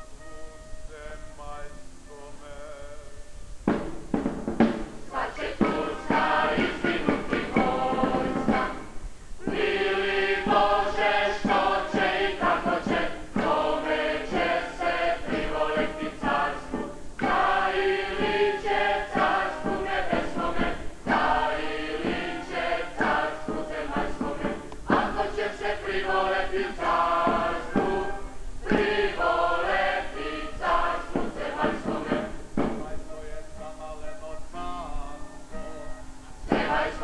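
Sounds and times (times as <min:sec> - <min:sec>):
regular beat: 0:03.6 - 0:33.8, 0:36.5 - 0:37.0
choir singing chant-like song: 0:05.1 - 0:35.7, 0:36.4 - 0:37.0.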